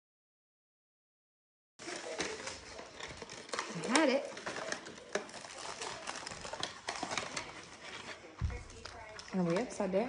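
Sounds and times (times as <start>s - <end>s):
items being handled clicking: 1.8s - 10.0s.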